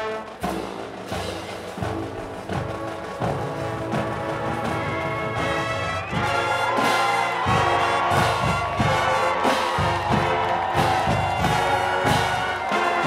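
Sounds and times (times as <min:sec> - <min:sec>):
marching band brass and drums: 0:00.0 - 0:13.0.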